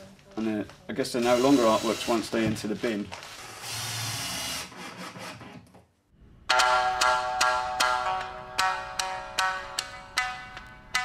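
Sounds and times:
cordless drill driving screw: 0:01.2 - 0:02.4, 0:03.4 - 0:05.4.

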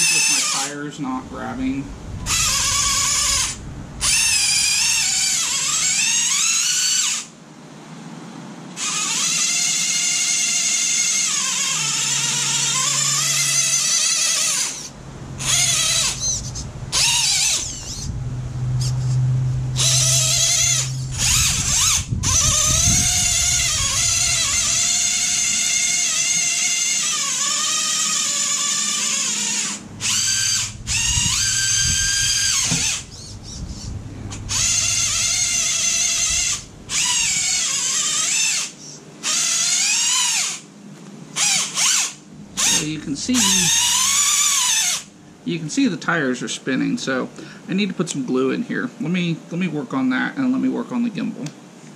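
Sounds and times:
toy car electric motor whining: 0:00.0 - 0:00.7, 0:02.2 - 0:07.3, 0:08.8 - 0:40.6, 0:41.4 - 0:45.1.

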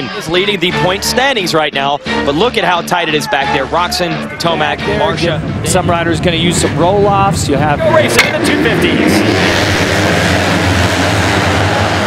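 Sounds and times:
motocross bikes revving: 0:04.5 - 0:12.0.

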